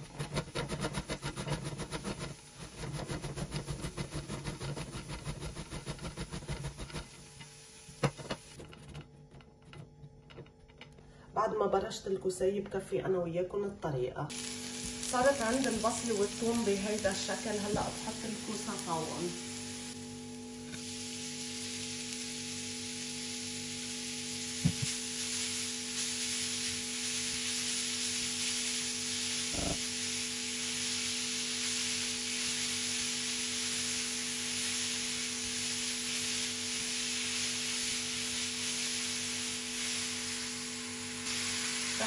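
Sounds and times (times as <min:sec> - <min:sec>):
zucchini sizzling in a frying pan: 0:00.6 - 0:08.6, 0:14.3 - 0:42.0.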